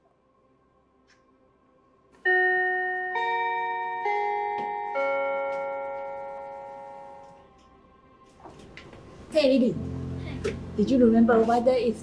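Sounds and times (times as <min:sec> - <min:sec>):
school bell chime: 0:02.3 - 0:07.4.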